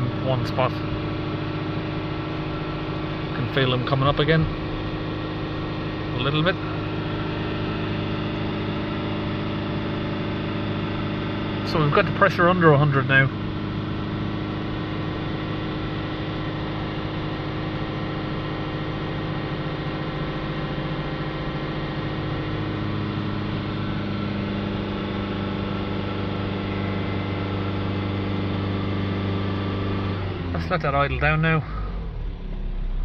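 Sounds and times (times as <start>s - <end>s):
diesel engine droning: 0.0s - 33.0s.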